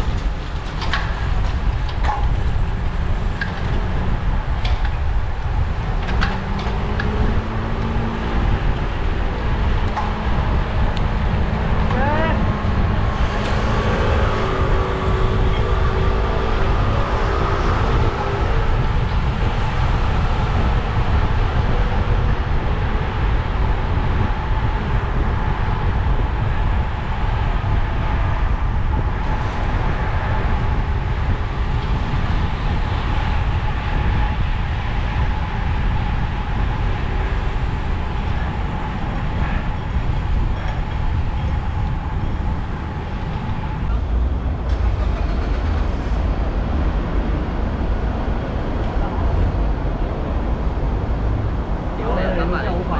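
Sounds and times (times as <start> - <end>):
wind rushing over microphone: 0.0 - 52.9.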